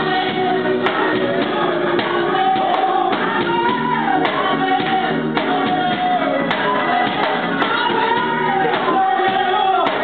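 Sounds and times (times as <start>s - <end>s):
gospel choir singing in harmony: 0.0s - 10.0s.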